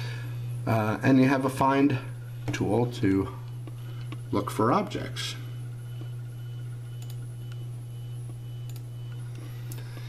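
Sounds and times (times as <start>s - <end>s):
computer hum: 0.0s - 10.0s.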